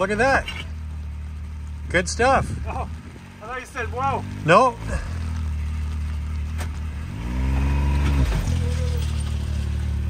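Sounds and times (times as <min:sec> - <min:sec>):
engine revving: 0:00.0 - 0:10.0.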